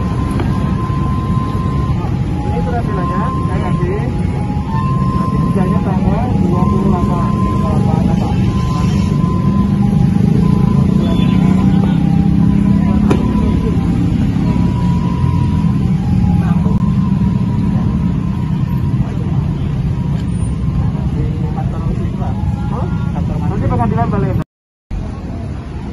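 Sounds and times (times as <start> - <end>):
people talking: 0.0 - 24.4
road traffic rumble: 0.0 - 25.9.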